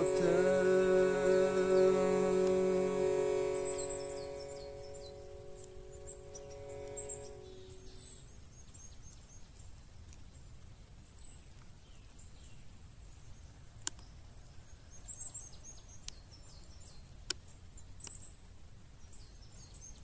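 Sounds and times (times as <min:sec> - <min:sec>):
held vocal chant note: 0:00.0 - 0:07.9
birds chirping: 0:00.0 - 0:08.2
faint outdoor background: 0:00.0 - 0:20.0.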